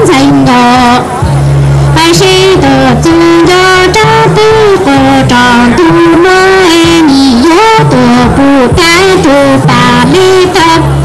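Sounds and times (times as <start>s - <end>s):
woman singing into a microphone: 0.0s - 1.1s, 2.0s - 11.0s.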